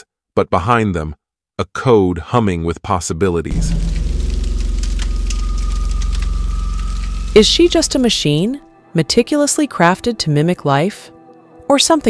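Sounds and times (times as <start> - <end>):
thin high tone: 3.5 - 8.7
low pulsing drone: 3.5 - 8.8
faint crackling clicks: 3.6 - 8.0.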